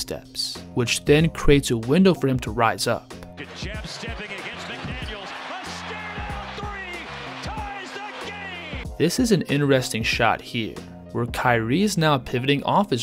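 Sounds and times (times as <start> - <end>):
background music with low notes: 0.0 - 13.0
arena crowd noise: 3.4 - 8.8.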